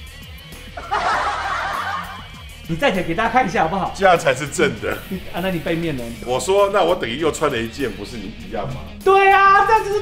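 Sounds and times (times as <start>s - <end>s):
background music: 0.0s - 10.0s
snickering voices: 0.8s - 2.6s.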